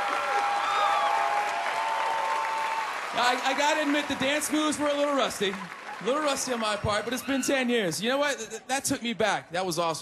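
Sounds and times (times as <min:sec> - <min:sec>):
audience applauding: 0:00.0 - 0:08.0.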